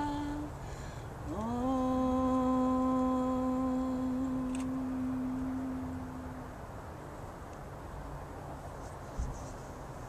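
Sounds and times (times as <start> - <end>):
woman chanting om: 0.0 - 6.6.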